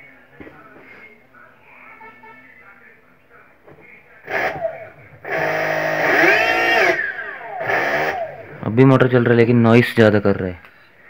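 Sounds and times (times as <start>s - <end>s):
electric motor whining roughly: 4.2s - 8.7s.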